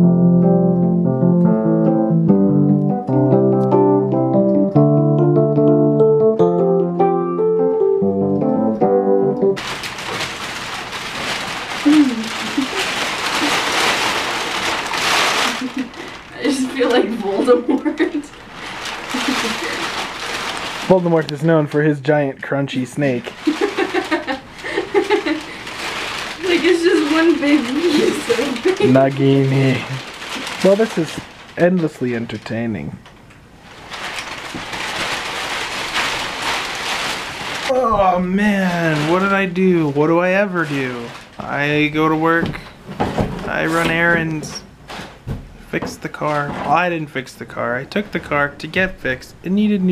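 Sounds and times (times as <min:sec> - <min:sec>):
packing paper crinkling: 0:09.6 - 0:45.2.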